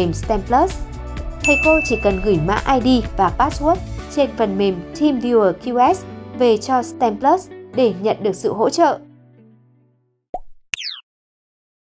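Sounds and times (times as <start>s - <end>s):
pop: 10.3s - 11.0s.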